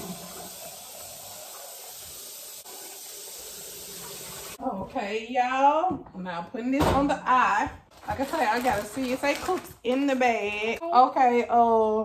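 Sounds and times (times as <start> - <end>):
kitchen faucet running: 0.0 - 4.6
rice being rinsed: 0.0 - 4.6.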